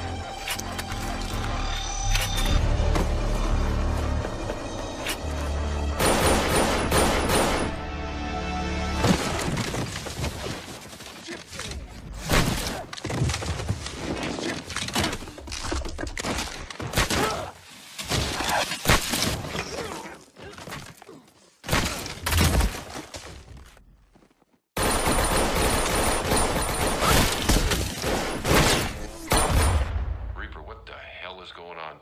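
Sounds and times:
gunshots and impacts: 6.0s - 7.8s, 24.8s - 30.5s
rapid gunfire bursts: 6.0s - 7.8s, 24.8s - 27.4s.

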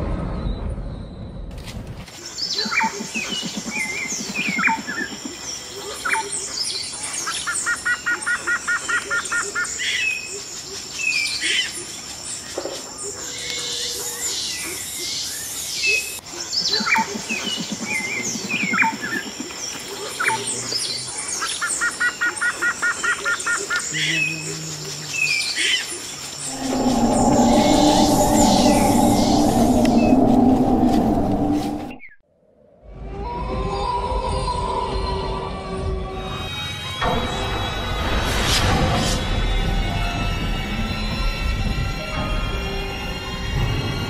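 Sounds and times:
birds chirping and calling: 2.4s - 11.8s, 25.2s - 32.2s.

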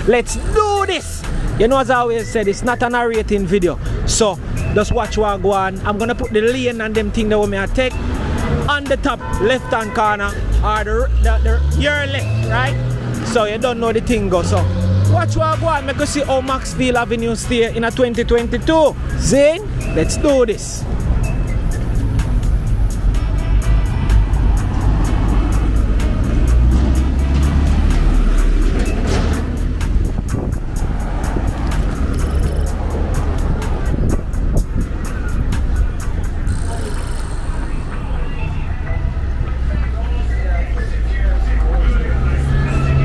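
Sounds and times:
cars going by: 0.0s - 43.0s
music with strong bass: 0.0s - 43.0s.

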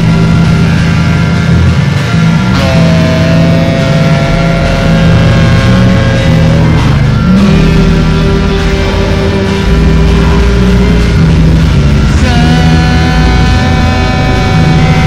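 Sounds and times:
distorted noise drones: 0.0s - 15.0s.

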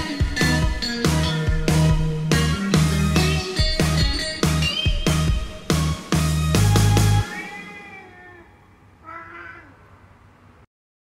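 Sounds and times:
cat meowing: 7.3s - 10.0s.

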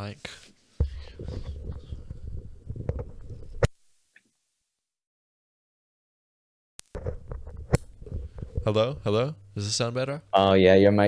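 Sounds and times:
microphone handling rubbing and bumping: 0.8s - 3.7s, 6.9s - 9.2s.

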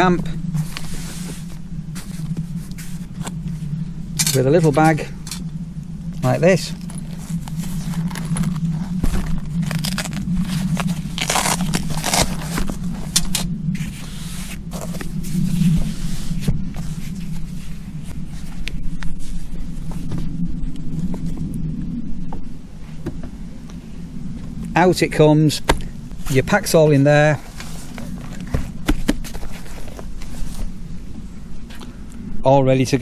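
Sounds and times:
steady low hum: 0.0s - 33.0s
cloth rustling and scraping: 0.5s - 3.7s, 6.8s - 20.3s, 27.2s - 30.8s.

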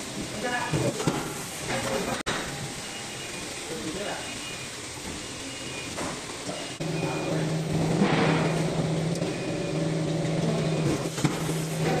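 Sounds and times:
sealing machine humming: 2.8s - 12.0s.

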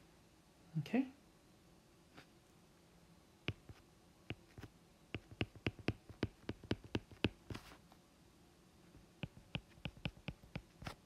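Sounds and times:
stylus tapping on glass screen: 3.5s - 7.4s.

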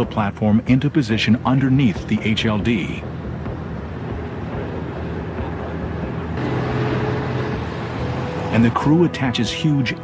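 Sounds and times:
diesel engines droning: 0.0s - 10.0s.

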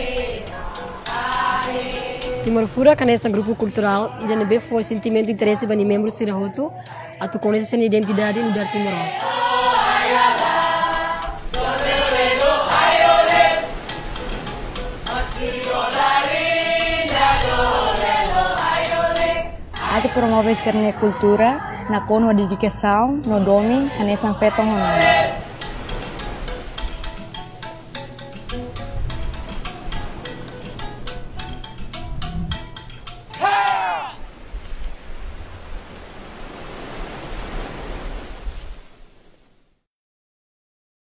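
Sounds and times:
group of voices singing: 0.0s - 25.6s
steady percussive beat: 0.0s - 34.2s
wind buffeting microphone: 32.0s - 32.8s, 34.2s - 38.9s.

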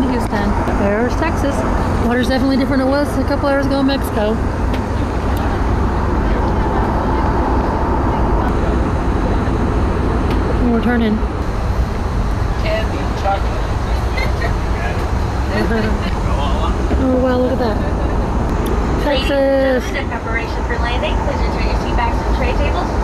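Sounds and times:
jet engine rumble and rushing air: 0.0s - 23.0s
faint muffled voices: 3.8s - 11.2s.

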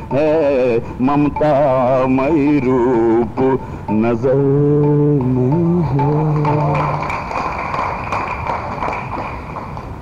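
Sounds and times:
audience applause: 6.4s - 9.9s.

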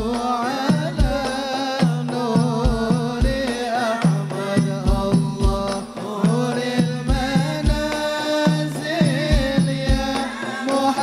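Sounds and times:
frame drums and hand drums: 0.0s - 11.0s
men singing in unison: 0.0s - 11.0s.

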